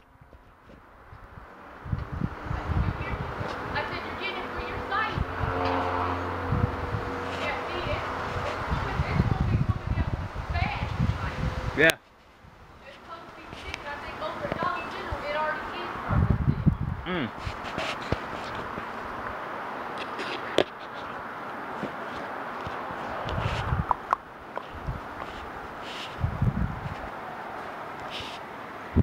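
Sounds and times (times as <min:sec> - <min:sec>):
wind buffeting microphone: 0:00.0 - 0:27.6
indistinct voice: 0:17.0 - 0:17.3.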